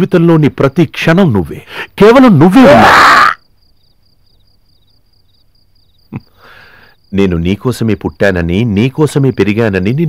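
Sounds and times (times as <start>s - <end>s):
man speaking: 0.0s - 2.9s, 7.2s - 10.0s
crickets chirping: 0.0s - 10.0s
soft breath: 6.3s - 7.1s.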